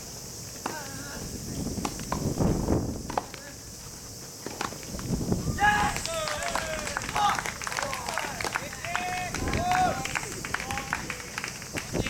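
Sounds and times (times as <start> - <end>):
steady high hiss: 0.0 - 12.0
players shouting high-pitched calls: 5.4 - 12.0.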